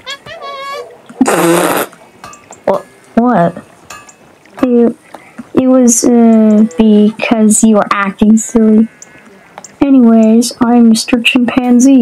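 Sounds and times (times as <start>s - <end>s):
cartoon fart sound effect: 0.0s - 2.0s.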